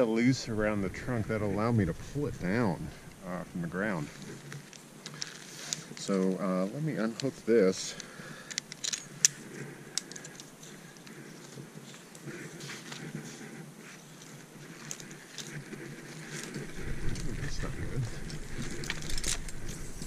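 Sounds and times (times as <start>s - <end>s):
rope rustling: 0.0s - 20.0s
carabiner clicking: 4.2s - 6.2s, 8.0s - 12.2s, 14.1s - 17.3s, 18.2s - 20.0s
clinks of hardware: 8.5s - 9.4s.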